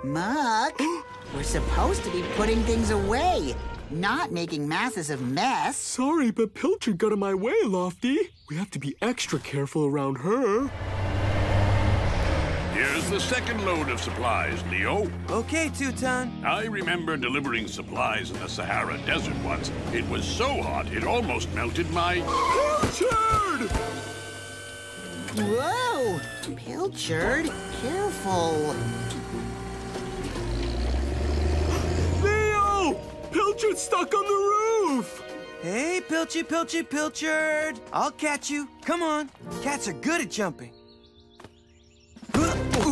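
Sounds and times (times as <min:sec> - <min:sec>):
cartoon background music: 0:00.0 - 0:07.7, 0:12.8 - 0:24.2, 0:25.3 - 0:41.2, 0:42.2 - 0:42.9
truck engine rumbling: 0:10.6 - 0:16.4, 0:17.5 - 0:22.8, 0:27.2 - 0:33.4
low engine rumble: 0:10.7 - 0:15.7.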